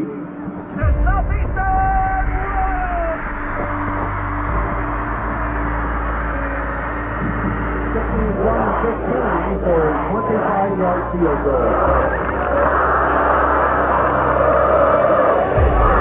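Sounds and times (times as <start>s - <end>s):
stadium crowd cheering: 0.0s - 16.0s.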